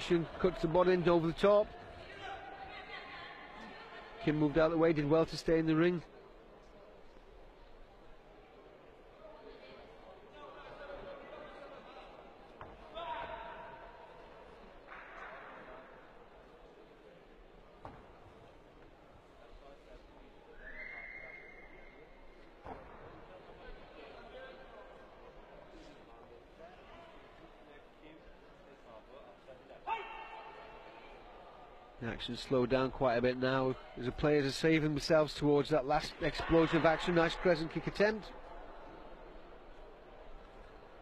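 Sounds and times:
crowd voices and shouting: 0.0 - 41.0.

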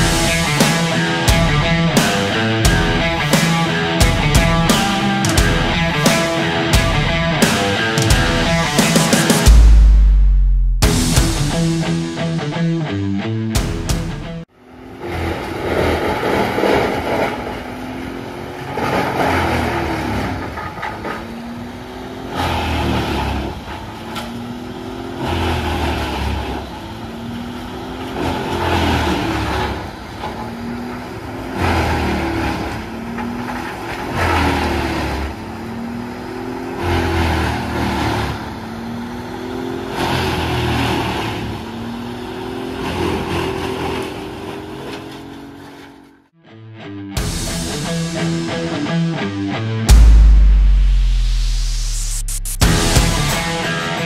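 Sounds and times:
diesel engine running: 0.0 - 46.3, 47.2 - 54.0.

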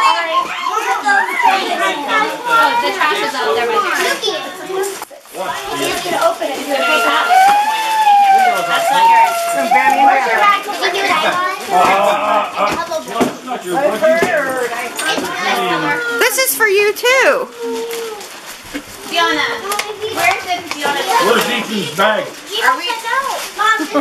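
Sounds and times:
excited children's voices: 0.0 - 13.2, 15.0 - 18.4, 19.0 - 24.0
adult chatter: 0.0 - 24.0.

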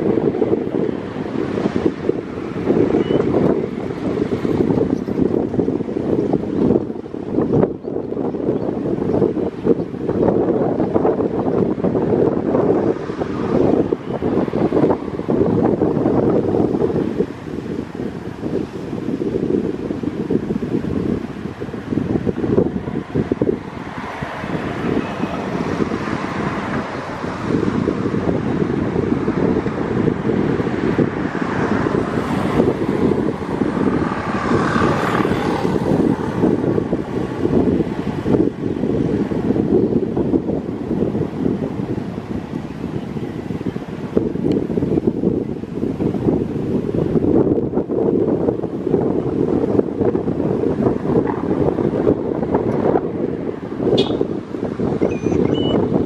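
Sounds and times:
wind on microphone: 0.0 - 56.0.

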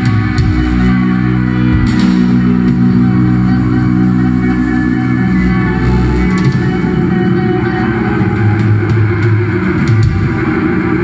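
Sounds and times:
bass guitar low notes: 0.0 - 11.0
electric guitars: 0.0 - 11.0.

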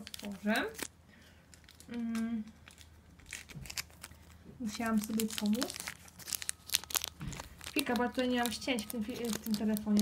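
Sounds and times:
plastic bag crinkling and ripping: 0.0 - 10.0.

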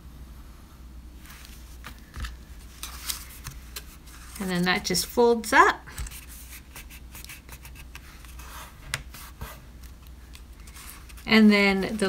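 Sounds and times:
paper rubbing and scratching: 2.8 - 4.9, 6.1 - 12.0.

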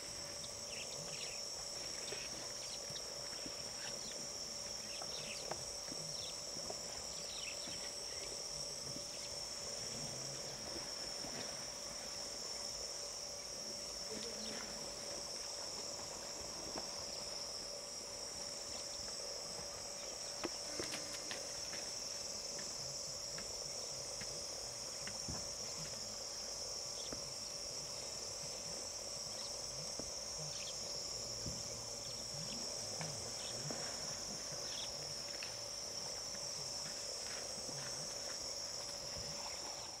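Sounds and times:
insects droning: 0.0 - 40.0.

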